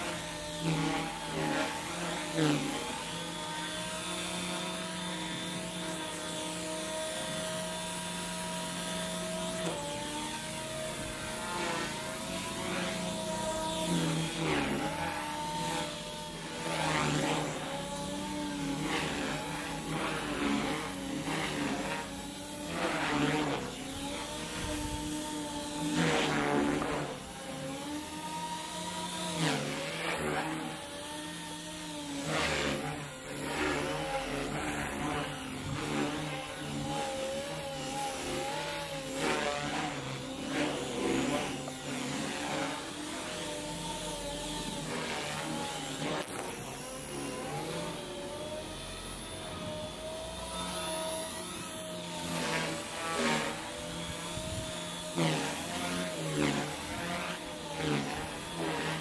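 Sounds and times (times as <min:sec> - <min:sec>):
rc helicopter motor whine: 0:00.0 - 0:59.0.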